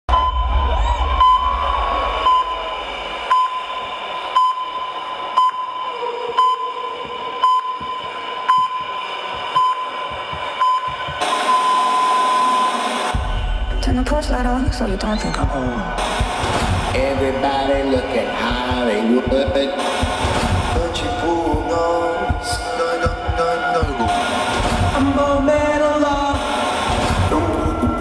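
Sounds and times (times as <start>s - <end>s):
heart monitor beeps: 0.1s - 0.6s, 1.2s - 1.6s, 2.2s - 2.7s, 3.3s - 12.9s
steady high tone: 0.1s - 14.2s
deep bass rumble: 13.2s - 28.0s.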